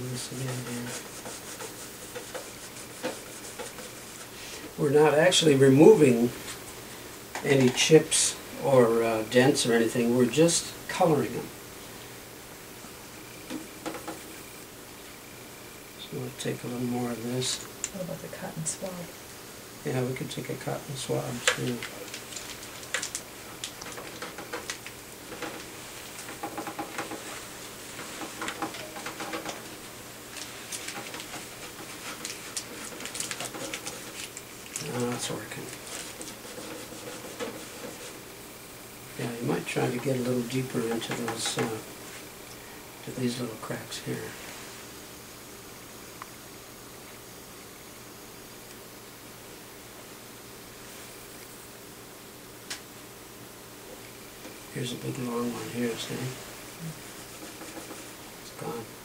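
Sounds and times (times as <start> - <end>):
room hiss: 0.0 - 59.0.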